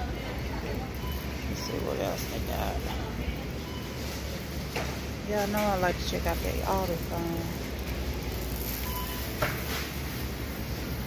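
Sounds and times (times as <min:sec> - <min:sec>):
supermarket background noise: 0:00.0 - 0:11.0.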